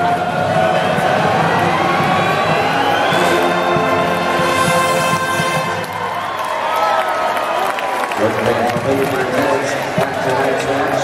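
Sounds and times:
brass band playing held chords: 0:00.0 - 0:06.4.

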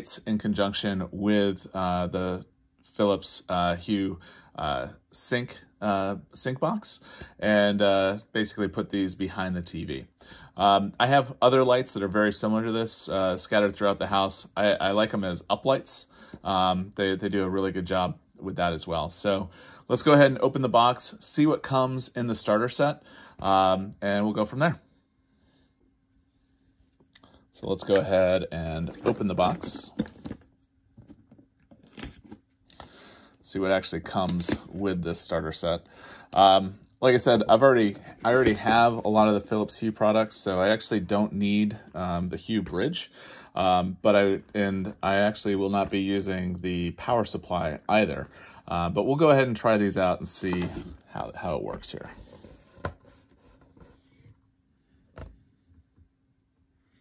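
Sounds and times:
cardboard rubbing and sliding: 0:28.2 - 0:30.4.

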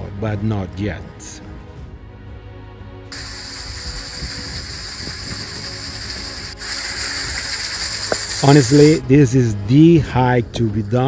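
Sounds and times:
background music: 0:00.0 - 0:11.0
waterfall spraying onto stones: 0:03.1 - 0:09.0.

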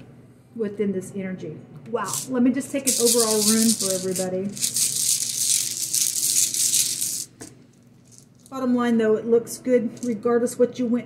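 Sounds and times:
stones rattling in a hand: 0:02.0 - 0:08.6, 0:10.0 - 0:10.2.

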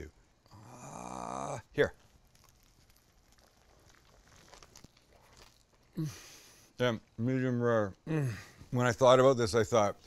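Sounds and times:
man chewing food: 0:02.0 - 0:06.0.

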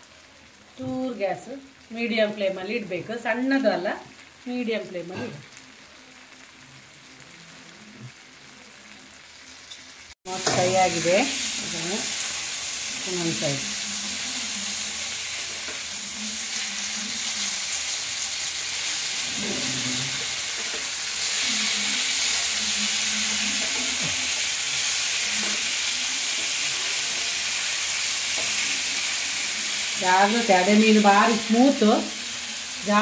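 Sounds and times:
fish sizzling in oil: 0:00.0 - 0:33.0
spatulas turning food in pan: 0:09.7 - 0:33.0.

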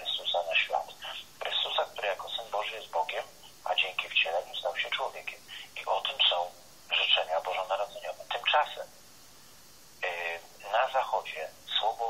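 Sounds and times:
person talking over telephone: 0:00.0 - 0:08.9, 0:10.0 - 0:12.0.

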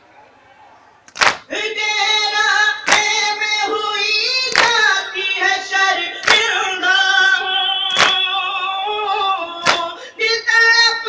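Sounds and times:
hands slapping chests: 0:01.1 - 0:01.5, 0:02.9 - 0:03.1, 0:04.5 - 0:04.8, 0:06.2 - 0:06.5, 0:07.9 - 0:08.3, 0:09.6 - 0:09.9
voices chanting a lament: 0:01.5 - 0:11.0.

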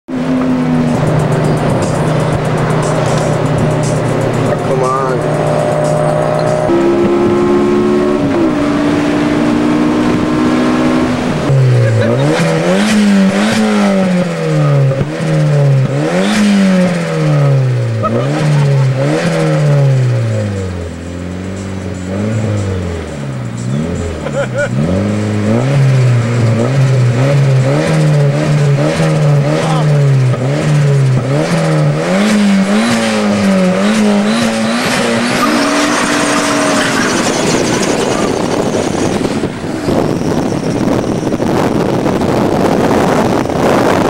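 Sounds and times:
car engine revving: 0:00.1 - 0:44.0.

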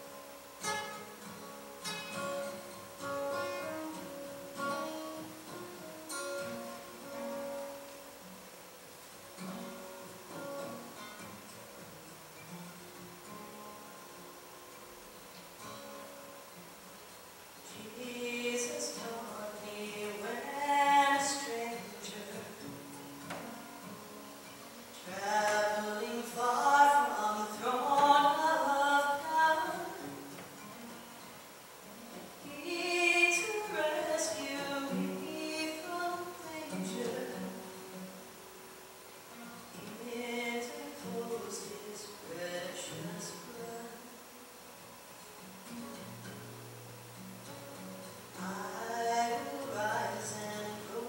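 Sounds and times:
acoustic guitar: 0:00.0 - 0:51.0
person singing: 0:17.7 - 0:23.4, 0:25.0 - 0:30.2, 0:32.4 - 0:37.8, 0:39.7 - 0:44.2, 0:48.4 - 0:51.0.

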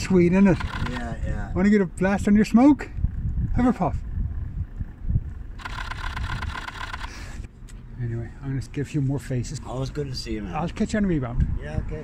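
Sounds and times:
wind rumble on microphone: 0:00.0 - 0:07.1, 0:10.6 - 0:12.0
street traffic: 0:00.0 - 0:12.0.

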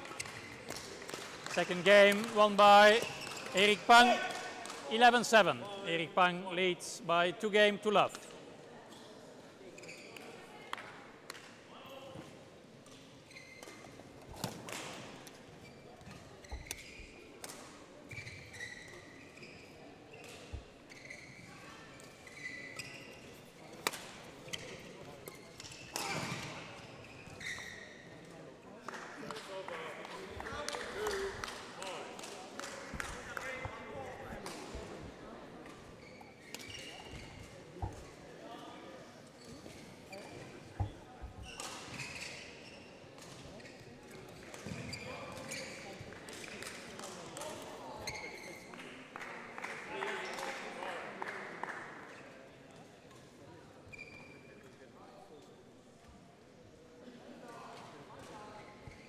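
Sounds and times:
shoe squeaks: 0:09.8 - 0:10.2, 0:13.3 - 0:13.8, 0:15.6 - 0:17.2, 0:18.1 - 0:19.8, 0:20.9 - 0:23.4, 0:24.5 - 0:28.1, 0:35.9 - 0:37.5, 0:39.4 - 0:43.0, 0:44.7 - 0:46.0, 0:53.9 - 0:54.5.

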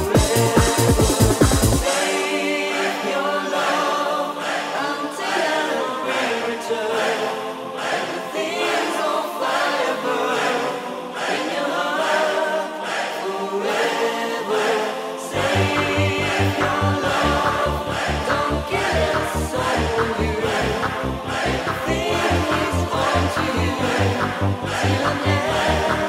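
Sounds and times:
choir-like sung vocals: 0:00.0 - 0:26.0
sustained synth chords: 0:15.3 - 0:26.0.

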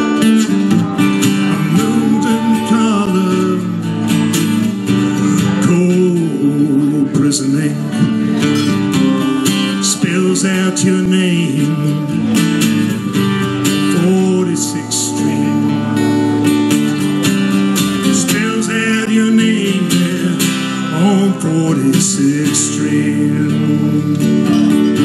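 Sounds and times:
keyboard accompaniment: 0:00.0 - 0:25.0
strummed acoustic guitar: 0:00.0 - 0:25.0.

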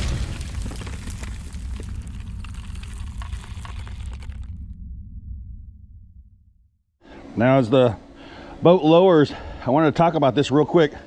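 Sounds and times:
explosion-like impact: 0:00.0 - 0:06.6
crackling rumbling tail: 0:00.0 - 0:06.8.

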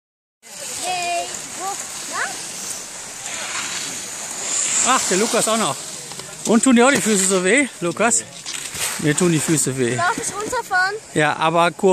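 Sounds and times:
children calling: 0:00.5 - 0:03.9
steady hiss: 0:00.5 - 0:11.9.

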